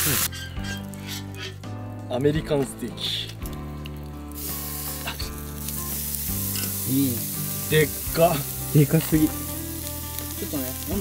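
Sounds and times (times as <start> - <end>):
background music sustained tones: 0.0 - 11.0
cooking sizzle over campfire: 0.0 - 11.0.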